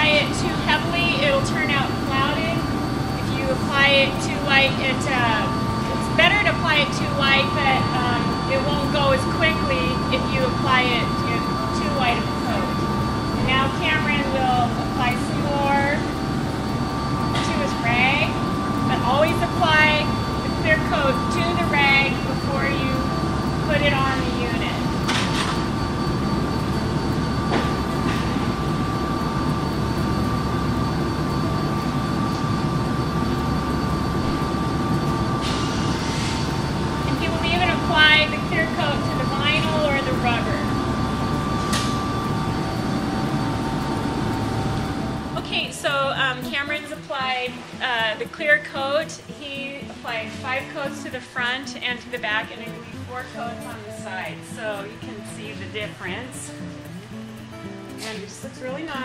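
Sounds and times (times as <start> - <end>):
indistinct talking: 0.0 - 26.5, 36.7 - 56.6
steady background hum: 0.0 - 59.0
thin steady tones: 0.0 - 59.0.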